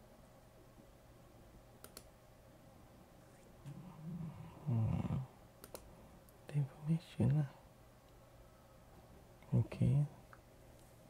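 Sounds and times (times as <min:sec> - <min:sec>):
computer mouse clicks: 0:01.8 - 0:02.1, 0:05.6 - 0:05.9
man murmuring: 0:03.6 - 0:05.4.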